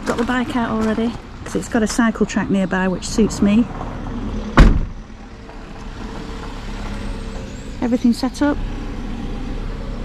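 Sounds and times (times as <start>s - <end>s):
sharp thump: 4.6s - 5.0s.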